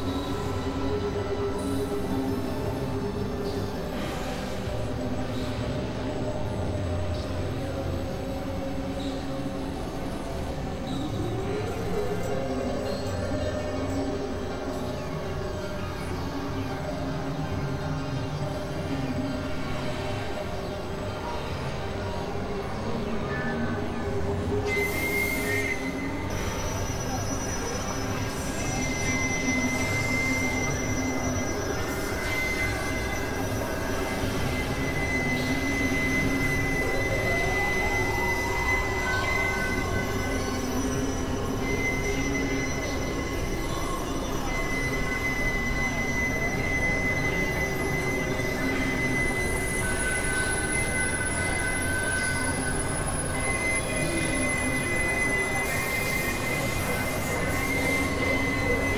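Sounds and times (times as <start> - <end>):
high steady whine: 17.0 - 58.9.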